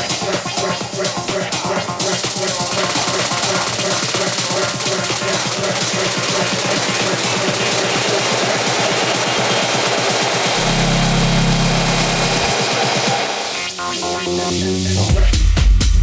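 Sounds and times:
electronic dance music: 0:00.0 - 0:16.0
low bass note: 0:10.6 - 0:12.5.

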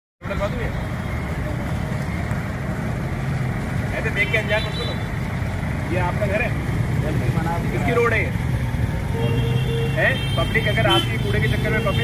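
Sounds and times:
road traffic rumble: 0:00.2 - 0:12.0.

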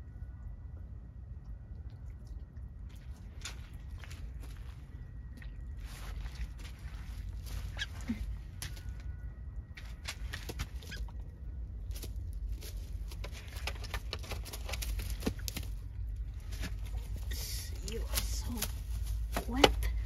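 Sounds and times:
low steady rumble: 0:00.0 - 0:20.0
clicks and rustles: 0:11.9 - 0:20.0.

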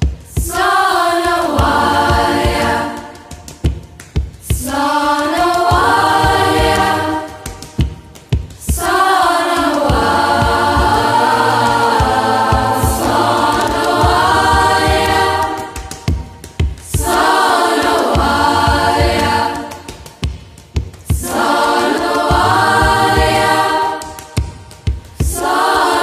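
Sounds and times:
choir singing held phrases: 0:00.3 - 0:03.4, 0:04.4 - 0:07.9, 0:08.6 - 0:19.9, 0:21.1 - 0:24.5, 0:25.2 - 0:26.0
low accompaniment: 0:00.4 - 0:26.0.

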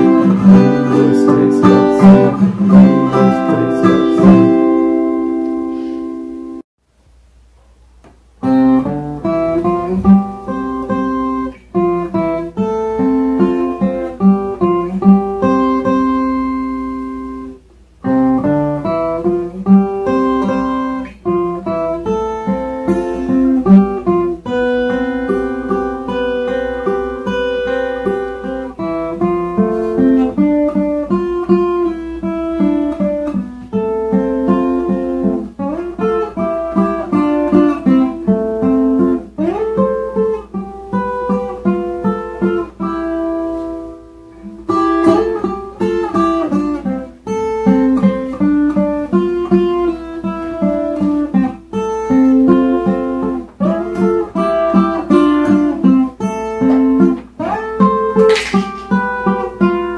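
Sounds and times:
ten-string guitar strummed and picked: 0:00.0 - 0:06.6, 0:08.1 - 0:59.9.

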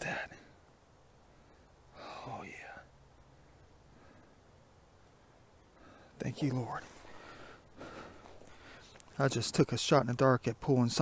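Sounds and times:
man whispering: 0:00.0 - 0:00.6, 0:01.9 - 0:03.0, 0:06.0 - 0:07.2.

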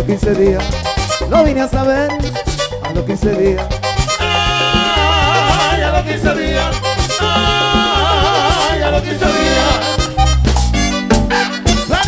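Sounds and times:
bass and percussion pattern: 0:00.0 - 0:12.0
merengue band playing: 0:00.0 - 0:12.0
wavering lead melody: 0:03.5 - 0:12.0.

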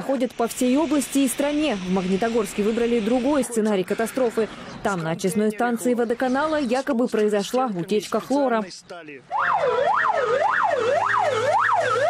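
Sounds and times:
fire engine siren wailing: 0:09.3 - 0:12.0.

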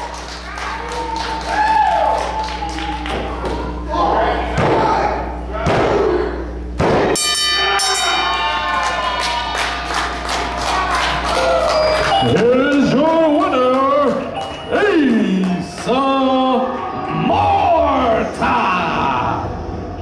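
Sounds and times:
crowd voices: 0:07.4 - 0:20.0
music: 0:09.5 - 0:12.6.

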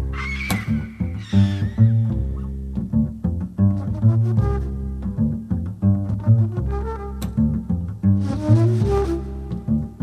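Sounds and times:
bass playing low notes: 0:00.0 - 0:10.0.

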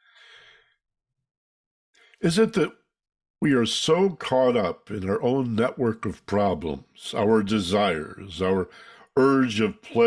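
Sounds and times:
man breathing: 0:00.0 - 0:00.8, 0:08.7 - 0:09.2.

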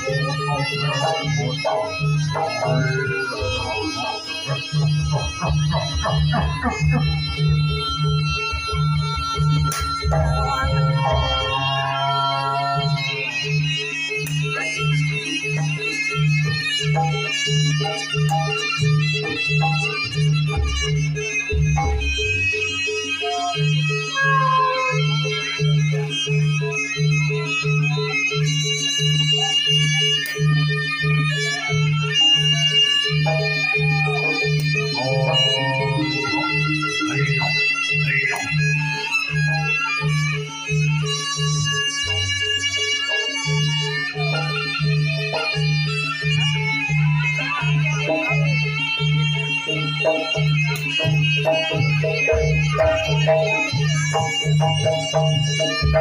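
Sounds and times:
reedy wind melody: 0:34.6 - 0:38.7.

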